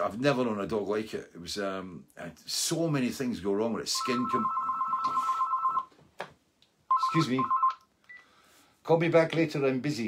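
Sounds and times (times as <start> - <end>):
telephone ringing: 4.0 - 5.9, 6.9 - 7.8.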